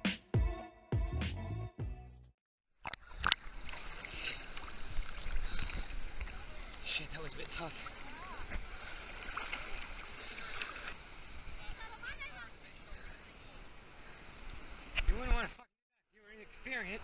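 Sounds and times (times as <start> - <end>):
water sloshing and gurgling: 2.8 - 11.6.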